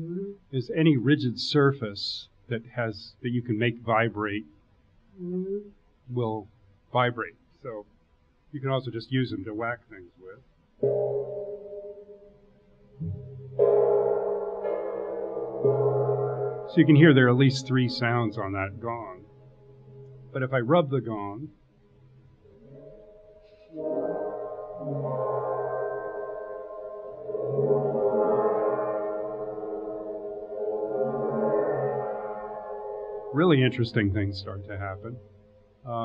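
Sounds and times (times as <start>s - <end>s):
gong ringing: 10.8s - 12.2s, 13.0s - 20.6s, 23.8s - 35.2s.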